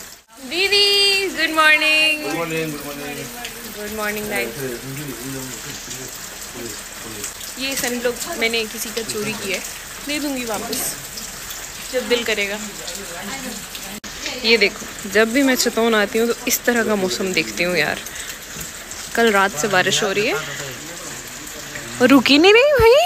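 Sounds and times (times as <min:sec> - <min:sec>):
steady rain falling: 0:00.0 - 0:23.0
voices talking: 0:00.3 - 0:23.0.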